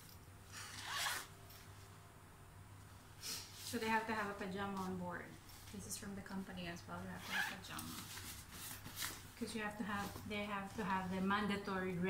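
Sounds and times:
zipper pulled open: 0.5s - 1.6s, 7.2s - 8.1s.

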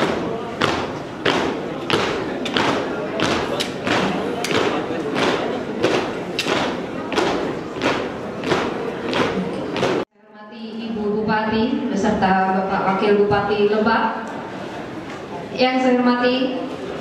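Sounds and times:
marching feet stamping: 0.0s - 10.1s.

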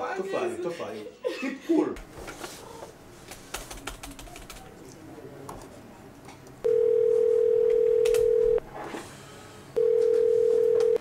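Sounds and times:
telephone ringing tone: 6.6s - 8.6s, 9.8s - 11.0s.

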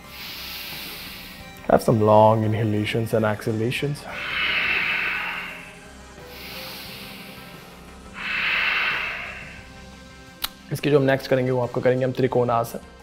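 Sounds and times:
man breathing heavily: 0.0s - 1.6s, 4.0s - 10.0s
faint background music: 0.0s - 13.0s.

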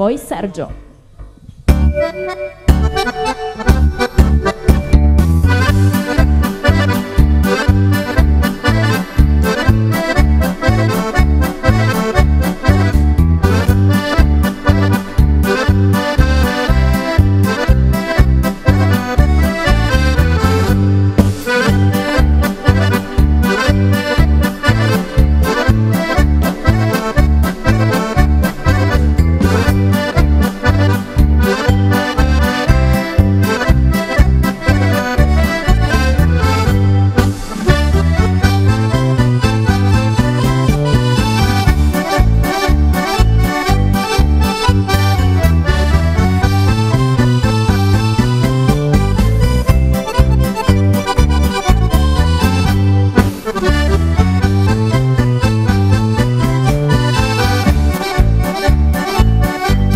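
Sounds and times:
accordion polka with band: 1.7s - 59.9s.

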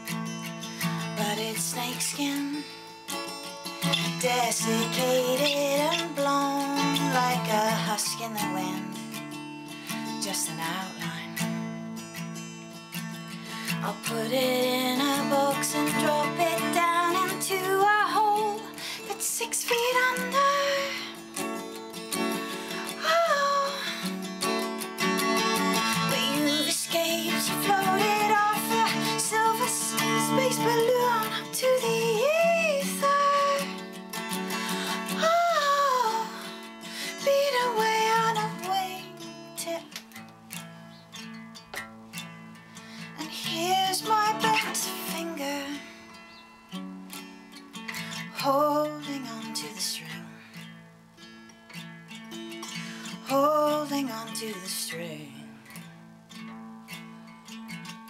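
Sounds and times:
woman singing: 0.0s - 11.7s, 13.4s - 40.3s, 43.0s - 46.2s, 47.9s - 50.7s, 52.5s - 55.9s
strummed acoustic guitar: 0.0s - 58.0s.

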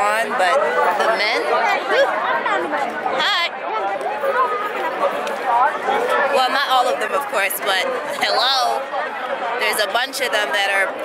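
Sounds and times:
crowd chatter: 0.0s - 11.0s
people talking over one another: 0.0s - 11.0s.

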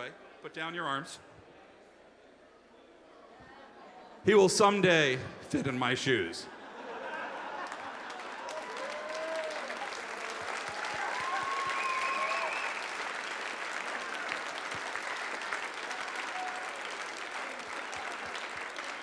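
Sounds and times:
audience applauding: 7.2s - 19.0s.

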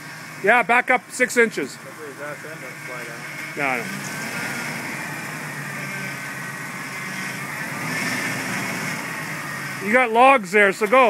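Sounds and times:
engine running at low revs: 0.0s - 11.0s.

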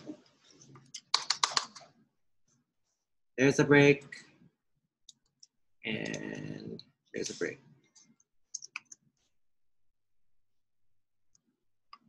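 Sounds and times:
computer keyboard keystrokes: 1.0s - 1.8s.

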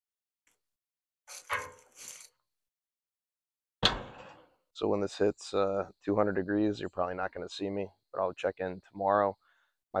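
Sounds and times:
scrape on metal smoker: 1.3s - 2.3s.

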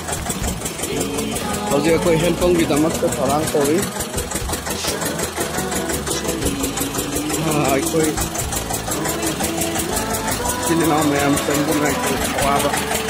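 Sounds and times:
drilling rig engine running: 0.0s - 13.0s.

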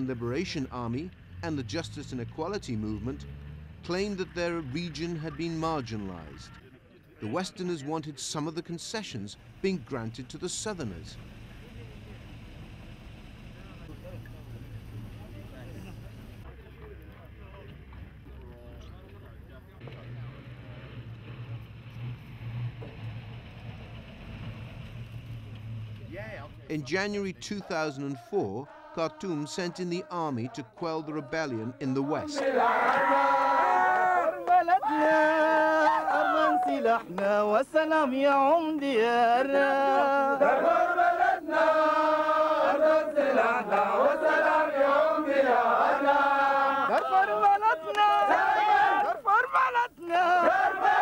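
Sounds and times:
truck engine running: 0.0s - 6.6s, 9.0s - 27.5s
men chanting in held notes: 27.4s - 37.2s, 39.4s - 51.0s.

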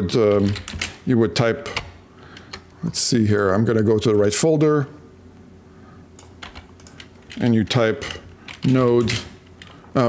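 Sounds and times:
low room hiss: 0.0s - 10.0s
computer keyboard keystrokes: 6.2s - 9.8s.

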